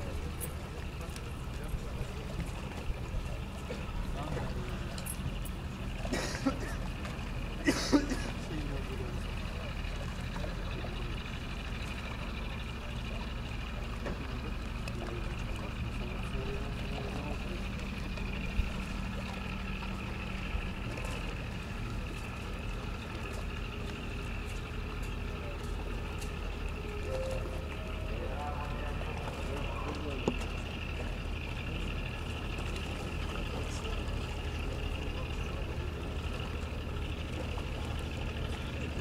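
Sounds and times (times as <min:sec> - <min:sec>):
faint distant voices: 0:00.0 - 0:39.0
low engine drone: 0:00.0 - 0:39.0.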